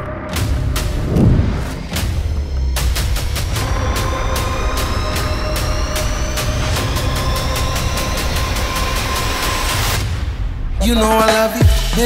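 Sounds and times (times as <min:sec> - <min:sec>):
song with singing voice: 0:10.8 - 0:12.0
electronic music with sharp beat: 0:11.1 - 0:12.0.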